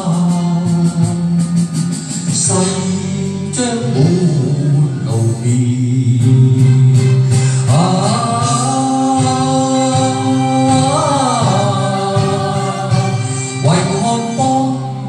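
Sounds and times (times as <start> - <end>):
loud backing track: 0.0 - 15.0
man singing karaoke: 0.0 - 15.0.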